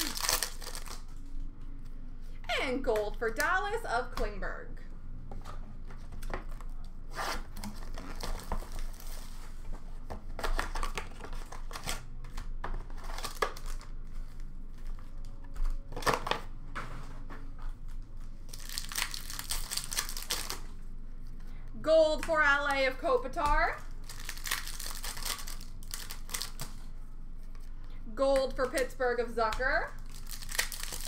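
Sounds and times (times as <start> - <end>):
foil pack tearing open: 0.0 - 1.1, 18.5 - 20.7, 24.0 - 26.8, 30.0 - 31.0.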